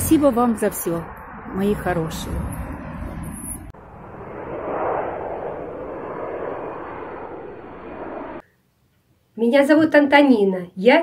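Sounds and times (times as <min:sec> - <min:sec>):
whoosh: 0:01.0 - 0:08.4.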